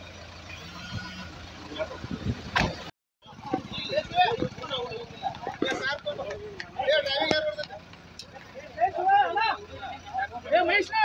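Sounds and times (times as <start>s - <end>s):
vehicle engine idling: 0.0s - 11.0s
men talking: 3.3s - 11.0s.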